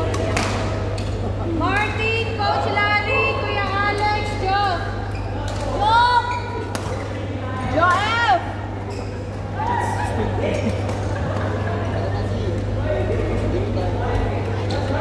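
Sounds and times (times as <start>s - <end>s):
shoes squeaking on court floor: 8.8s - 9.5s.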